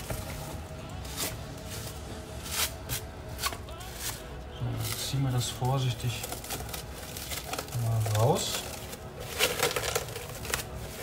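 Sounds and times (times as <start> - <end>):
plastic cling film crinkling: 0.0 - 11.0.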